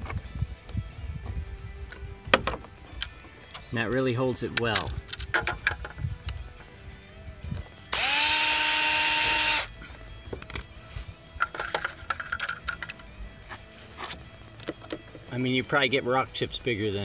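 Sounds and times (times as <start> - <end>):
handling clicks and taps: 4.5 - 6.4, 14.1 - 15.3
cordless drill drilling plastic: 7.9 - 9.7.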